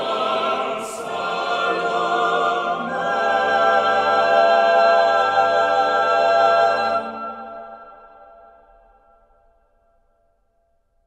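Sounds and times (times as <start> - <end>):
choir singing held chord: 0.0 - 8.3
church reverberation: 0.0 - 9.8.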